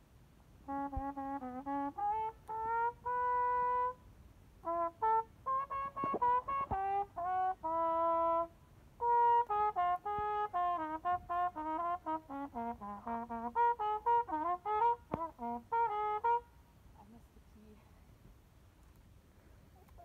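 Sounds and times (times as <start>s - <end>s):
solo trumpet playing: 0.6s - 16.7s.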